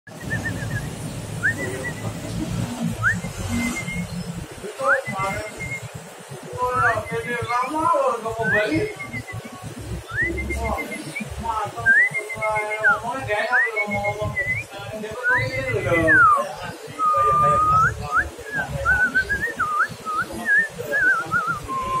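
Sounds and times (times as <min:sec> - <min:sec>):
bird chirp: 0:00.1 - 0:22.0
person whistling: 0:10.1 - 0:11.2, 0:17.0 - 0:22.0.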